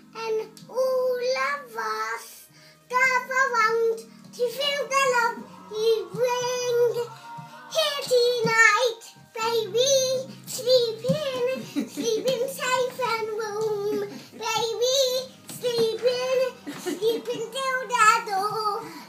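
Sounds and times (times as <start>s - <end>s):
girl singing unaccompanied: 0.0s - 19.0s.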